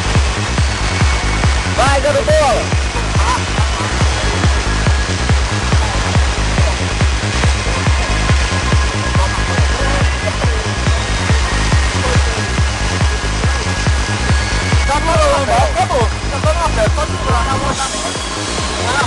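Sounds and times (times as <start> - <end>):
electronic dance music: 0.0 - 19.0
voices: 1.6 - 19.0.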